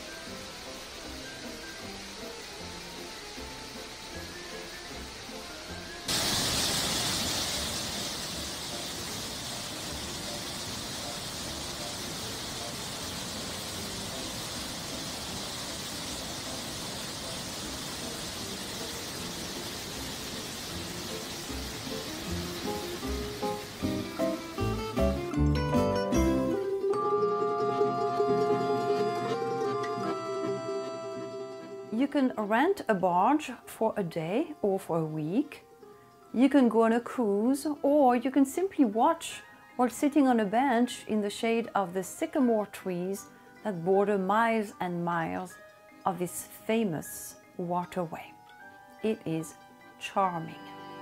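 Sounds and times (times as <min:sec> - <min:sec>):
soft background music: 0:00.0 - 0:51.0
plucked-string music: 0:21.6 - 0:32.1.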